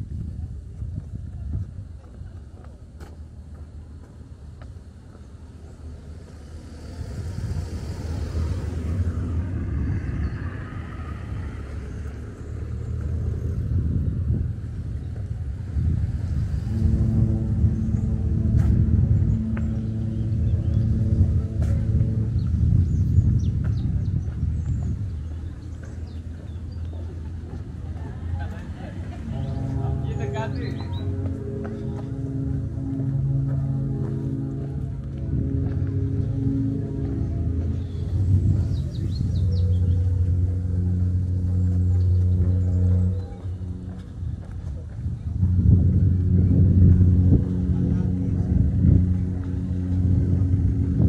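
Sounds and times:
road traffic rumble: 0.0s - 51.0s
vehicle engine humming: 0.0s - 51.0s.

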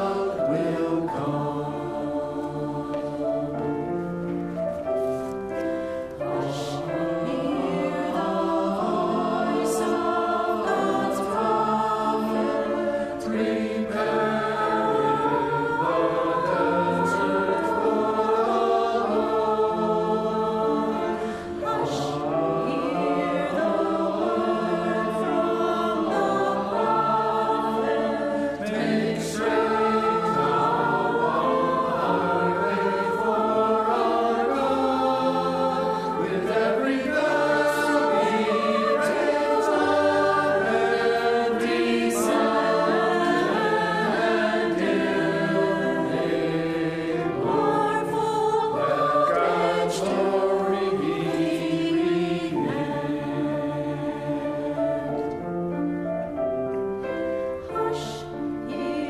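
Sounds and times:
mixed choir singing in harmony: 0.0s - 59.0s.

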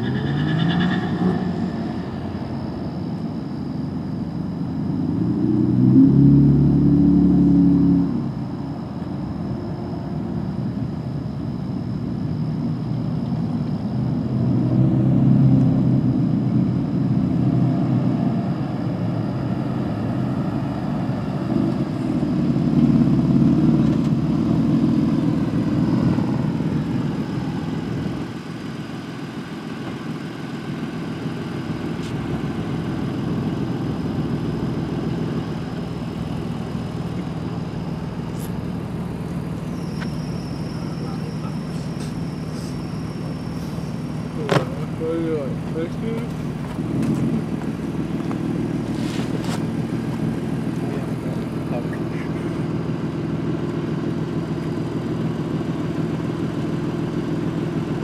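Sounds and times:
truck engine rumbling: 0.0s - 58.0s.

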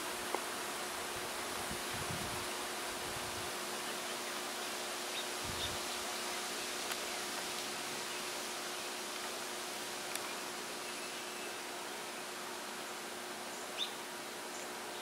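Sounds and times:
outdoor background hiss: 0.0s - 15.0s.

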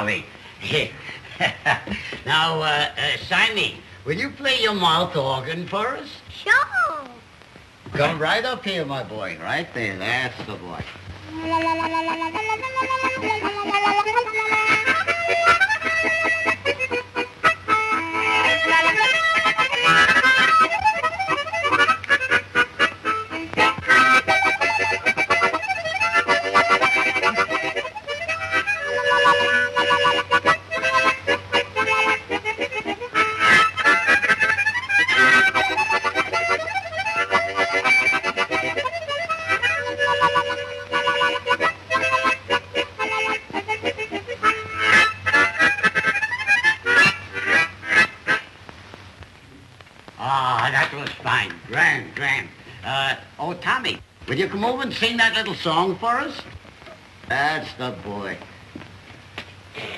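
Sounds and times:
harmonica playing chords: 11.2s - 48.5s.

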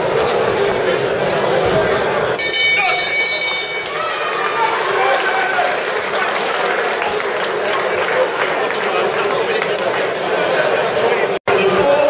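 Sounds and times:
crowd shouting and talking: 0.0s - 12.0s
boxing ring bell ringing: 2.4s - 4.2s.

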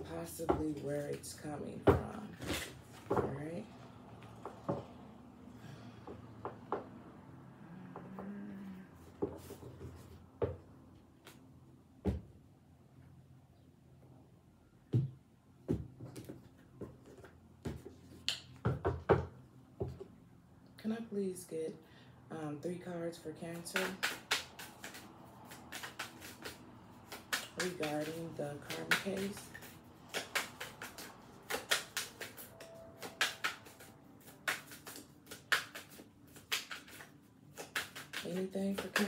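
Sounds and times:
cards tapping and clicking: 23.5s - 39.0s.

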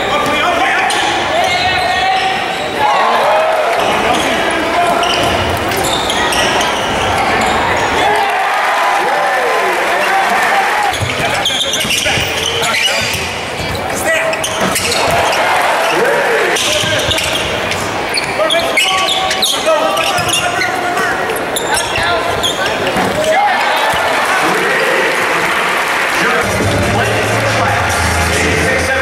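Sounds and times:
indistinct shouts and talk: 0.0s - 29.0s.

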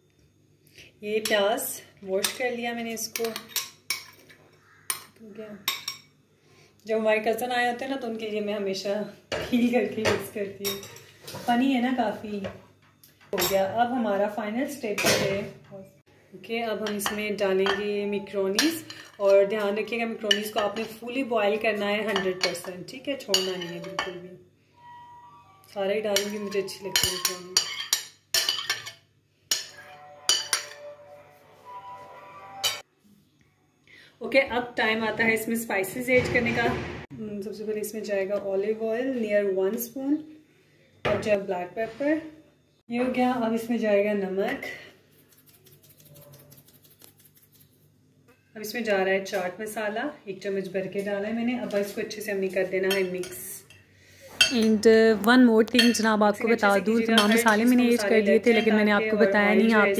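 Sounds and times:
metal spoon clinking on glass bowl: 26.1s - 30.9s, 55.7s - 56.1s, 57.0s - 57.8s.

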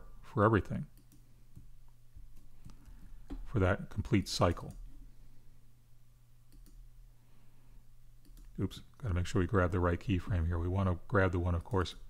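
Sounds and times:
low steady hum: 0.0s - 12.0s
computer mouse clicks: 0.9s - 1.7s, 6.5s - 6.8s, 8.2s - 8.6s.

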